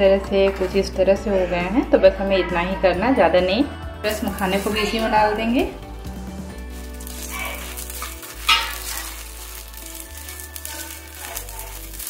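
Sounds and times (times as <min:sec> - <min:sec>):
soft background music: 0:00.0 - 0:12.0
food sizzling in a pan: 0:04.0 - 0:12.0
spatula stirring in a pan: 0:06.5 - 0:12.0.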